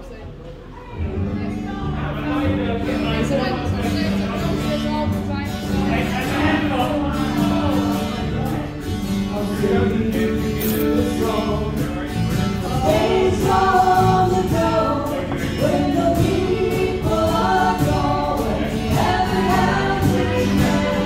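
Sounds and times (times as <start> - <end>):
acoustic guitar accompaniment: 0.0 - 21.0.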